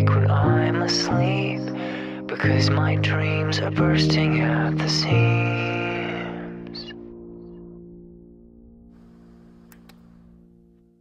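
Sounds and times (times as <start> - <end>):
short clicks: 9.7 - 10.3.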